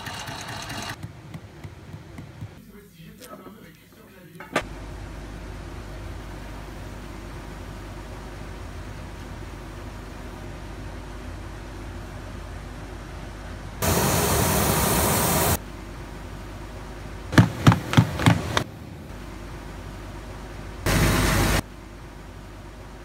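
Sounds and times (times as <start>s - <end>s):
low steady hum: 0.9s - 23.0s
loud steady hiss: 13.7s - 16.5s, 17.3s - 22.8s
sharp knocks: 17.4s - 18.7s.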